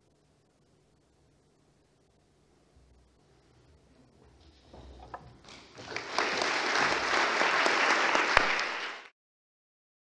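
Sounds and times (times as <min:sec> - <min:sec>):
audience applause: 0:05.5 - 0:09.1.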